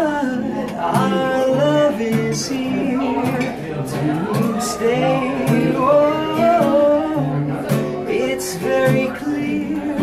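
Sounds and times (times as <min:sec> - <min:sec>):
man singing: 0:00.0 - 0:10.0
strummed acoustic guitar: 0:00.0 - 0:10.0.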